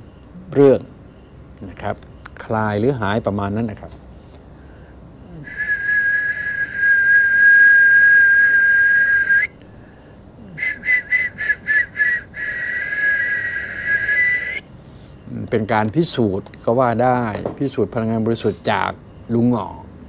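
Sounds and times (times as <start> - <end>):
high whistling tone: 5.3 - 9.6, 10.5 - 14.7.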